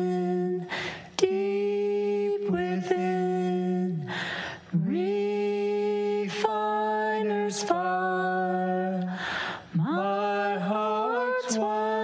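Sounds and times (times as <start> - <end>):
man and woman singing: 0.0 - 12.0.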